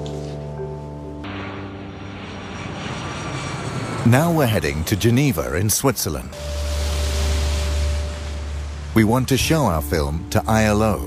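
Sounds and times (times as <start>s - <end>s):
airplane flying overhead: 0.0s - 11.0s.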